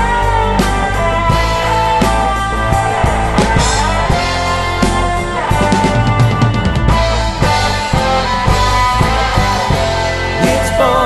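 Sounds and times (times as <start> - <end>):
bass guitar: 0.0 - 11.0
rock guitar: 0.0 - 11.0
steady drum beat: 0.0 - 11.0.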